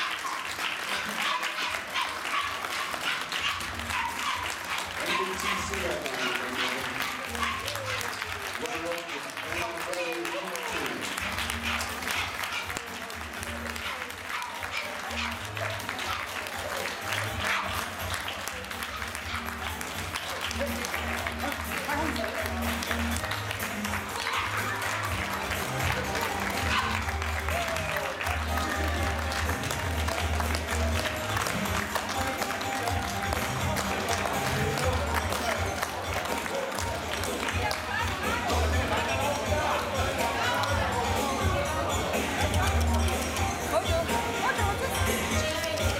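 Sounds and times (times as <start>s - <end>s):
audience applauding: 0.0s - 45.9s
background music with bass line: 17.1s - 45.9s.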